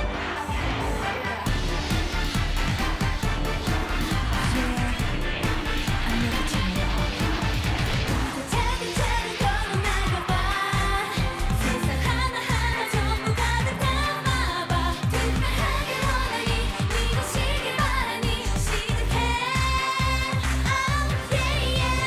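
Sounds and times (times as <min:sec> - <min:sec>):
dance-pop backing track: 0:00.0 - 0:22.0
women singing pop song: 0:03.7 - 0:22.0.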